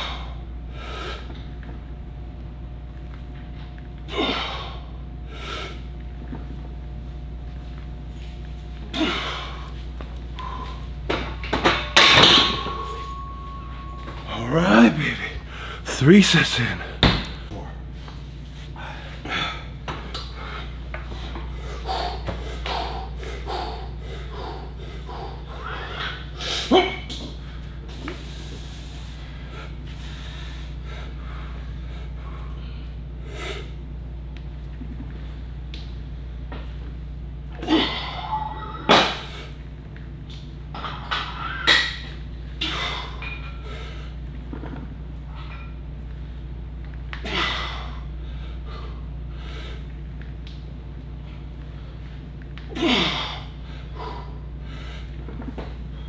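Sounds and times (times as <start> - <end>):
low steady hum: 0.0 - 56.0
man breathing sharply: 15.0 - 17.0, 47.3 - 49.9.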